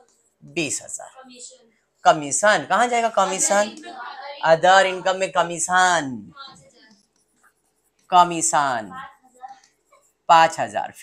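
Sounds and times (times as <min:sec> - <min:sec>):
man speaking: 0:00.4 - 0:01.2, 0:02.0 - 0:06.4, 0:08.1 - 0:09.0, 0:10.3 - 0:11.0
pen writing on screen: 0:06.6 - 0:10.2.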